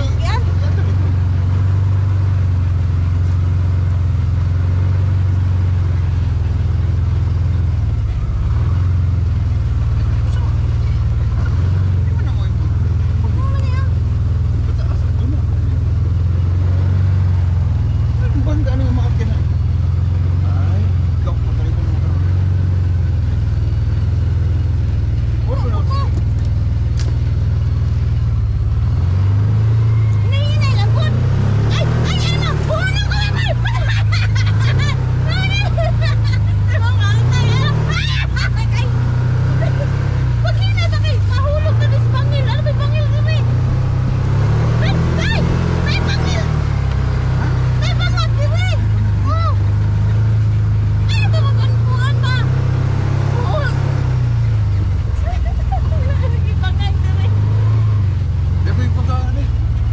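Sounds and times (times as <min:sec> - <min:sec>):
vehicle engine droning: 0:00.0 - 0:59.9.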